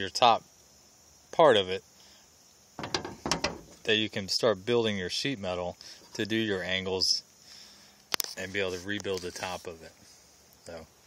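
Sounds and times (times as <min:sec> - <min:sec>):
sheet metal clicks and rattles: 0:02.8 - 0:03.7.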